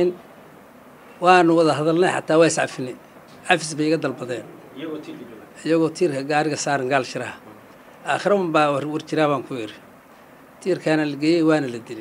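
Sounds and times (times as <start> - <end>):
man speaking into microphone: 0.0 - 0.2, 1.2 - 9.9, 10.6 - 12.0.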